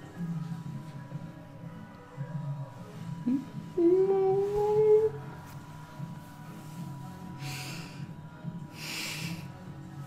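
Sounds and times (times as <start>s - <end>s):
faint pop music: 0.0s - 10.0s.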